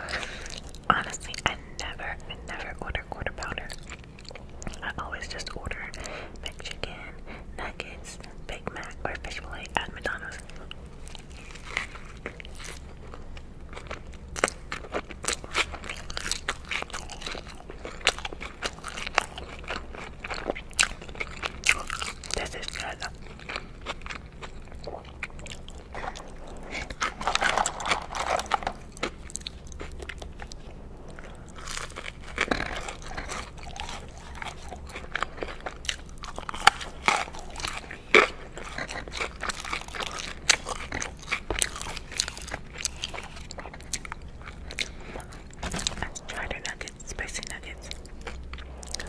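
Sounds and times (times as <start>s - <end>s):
chewing crunchy food: 0.0s - 7.4s, 8.0s - 49.0s.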